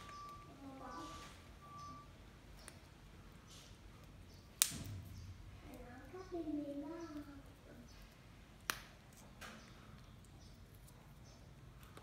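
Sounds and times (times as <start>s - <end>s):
green bean snapping: 4.6s - 5.0s, 8.6s - 9.0s.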